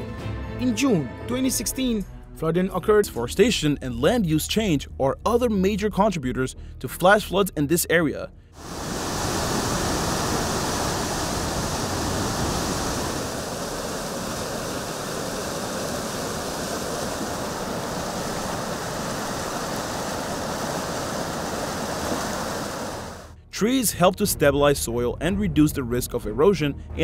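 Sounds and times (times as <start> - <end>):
floodwater rushing: 8.6 - 23.4.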